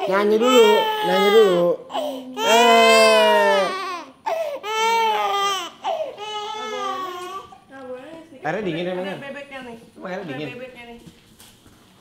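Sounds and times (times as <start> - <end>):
infant crying: 0.0 - 7.6.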